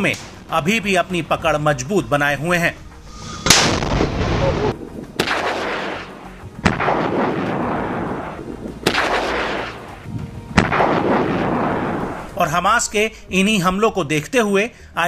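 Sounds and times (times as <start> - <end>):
heavy weapons blasts: 3.4 - 10.0.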